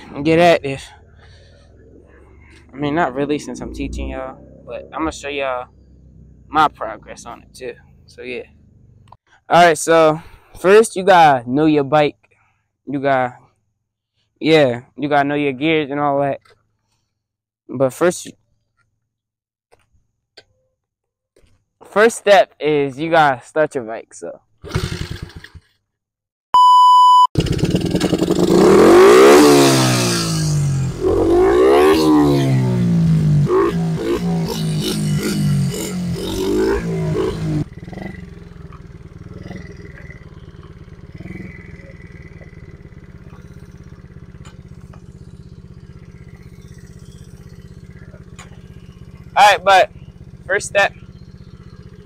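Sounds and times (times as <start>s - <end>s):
small motorbike engine revving: 1.0s - 6.5s, 24.6s - 25.7s, 27.4s - 52.0s
short high beep: 26.6s - 27.4s.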